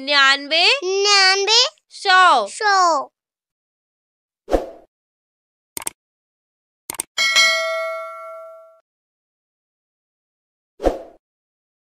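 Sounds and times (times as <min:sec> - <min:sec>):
quick clicks: 0:05.8 - 0:06.0, 0:06.9 - 0:07.1
bright bell-like ding: 0:07.2 - 0:08.8.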